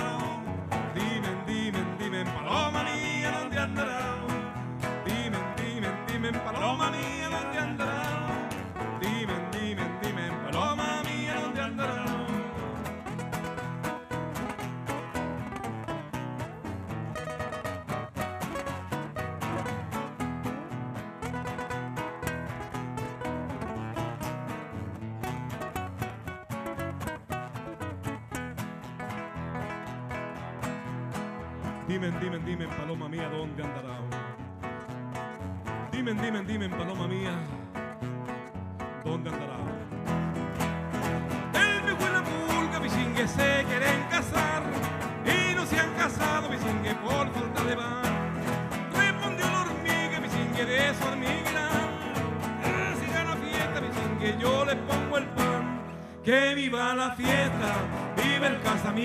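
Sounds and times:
person singing: 0.0s - 14.2s, 41.3s - 59.0s
acoustic guitars playing folk song: 0.0s - 59.0s.

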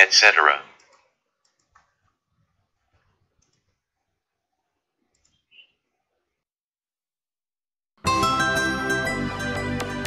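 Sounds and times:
faint clicks: 0.8s - 2.2s, 2.9s - 3.8s, 5.0s - 5.6s.

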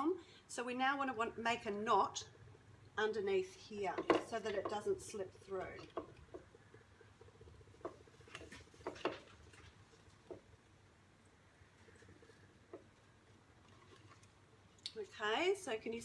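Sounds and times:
low room noise: 0.0s - 16.0s
cord and timber rustles and taps: 5.6s - 10.6s.

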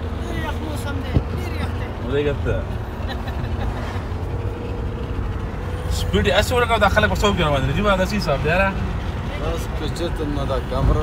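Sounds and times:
engine and road rumble in cabin: 0.0s - 11.0s.

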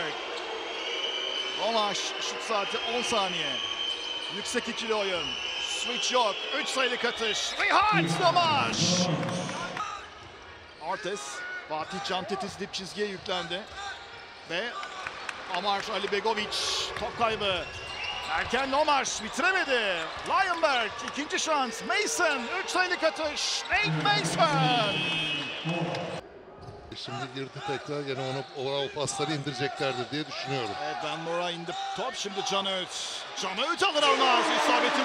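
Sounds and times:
basketball arena sound: 0.0s - 35.0s
commentator's voice: 7.1s - 9.8s, 20.3s - 26.2s, 32.2s - 35.0s
arena background noise: 7.6s - 11.7s, 23.7s - 26.7s.

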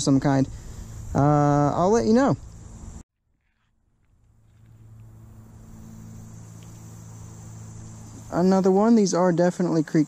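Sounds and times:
crickets trilling: 0.0s - 3.0s, 4.4s - 10.0s
low steady hum: 3.8s - 10.0s.

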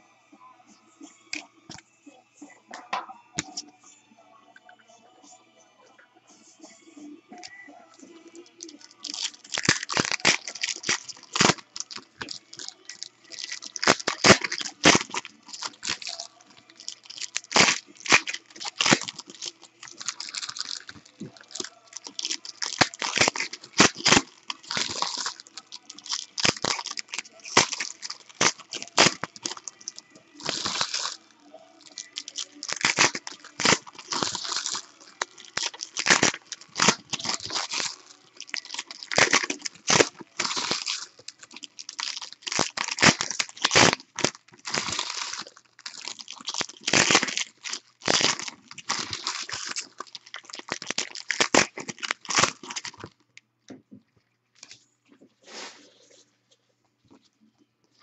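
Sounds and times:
foil packs crinkling and tearing: 8.5s - 53.2s.

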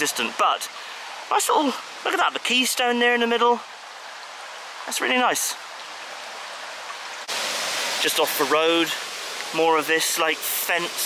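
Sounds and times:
river rushing: 0.0s - 11.0s.

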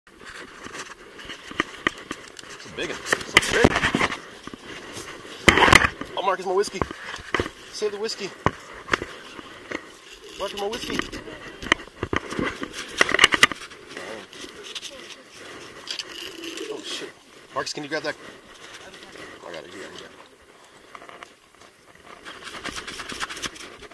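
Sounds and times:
fishing reel rustle: 0.1s - 23.9s
handling noise: 0.1s - 23.9s.

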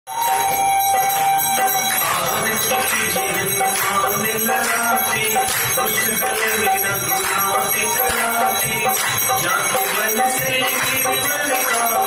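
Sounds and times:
temple bells ringing: 0.1s - 12.0s.

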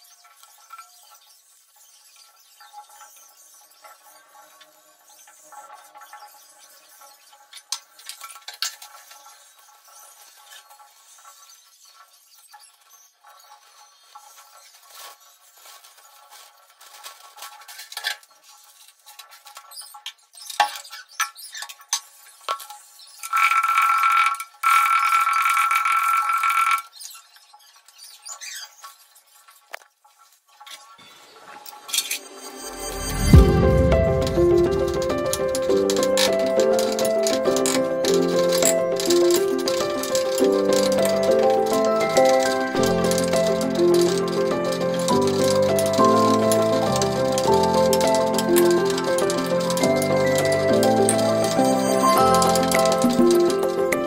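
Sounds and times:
steel utensils clinking: 31.7s - 54.0s
steady tone: 31.8s - 39.6s.

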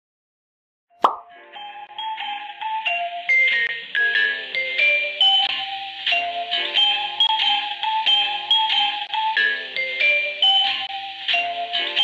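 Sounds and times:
plop sound effect: 1.0s - 1.3s.

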